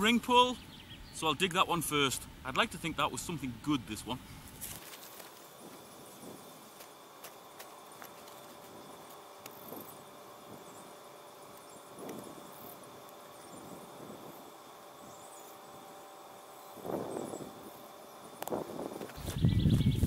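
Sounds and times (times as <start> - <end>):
faint steady background hum: 0.0 - 20.0
hands rustling grass and soil: 4.3 - 14.6.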